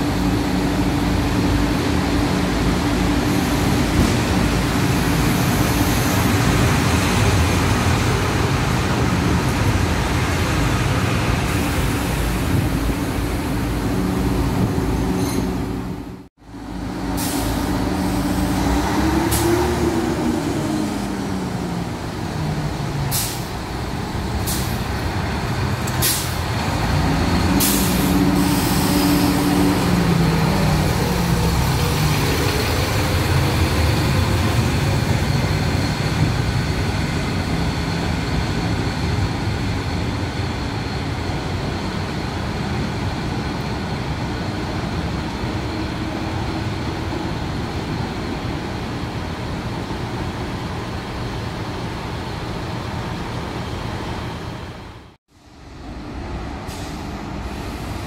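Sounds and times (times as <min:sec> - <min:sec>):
diesel railcar engine revving: 0:00.0 - 0:58.0.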